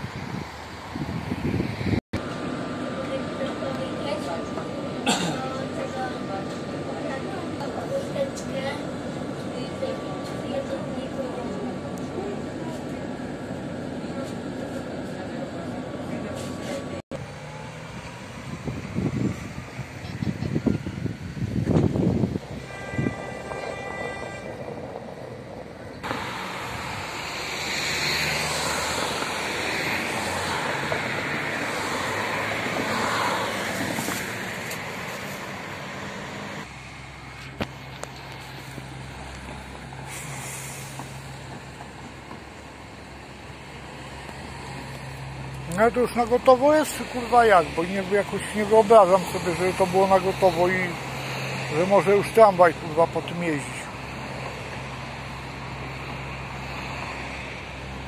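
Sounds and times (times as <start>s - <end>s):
cars driving past: 0.0s - 58.0s.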